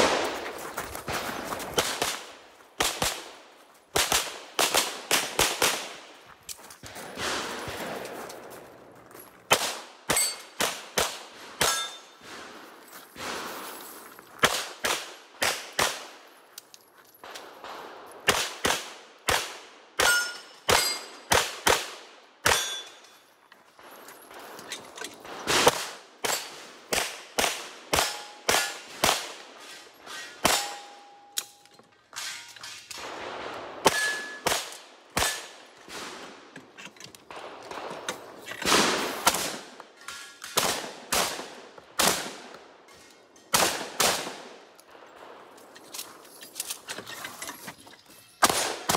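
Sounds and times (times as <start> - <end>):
shotgun shots: 0.0 - 3.4, 4.0 - 6.0, 37.3 - 39.8, 40.4 - 42.5, 43.5 - 44.6, 48.4 - 48.9
pistol shots: 1.1 - 6.0, 9.5 - 12.4, 17.3 - 22.9, 25.2 - 29.4, 33.0 - 36.4, 37.3 - 39.8, 40.4 - 42.5, 43.5 - 44.6, 48.4 - 48.9
steel targets clanging: 10.1 - 10.6, 11.6 - 12.2, 20.0 - 21.2, 22.5 - 23.2, 29.7 - 33.0, 33.8 - 34.5.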